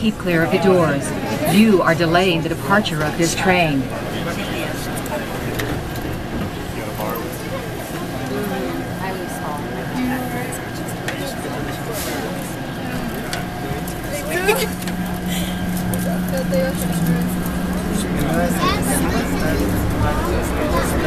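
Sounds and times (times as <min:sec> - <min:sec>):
passengers talking: 0:00.0 - 0:21.0
train motor hum: 0:00.0 - 0:21.0.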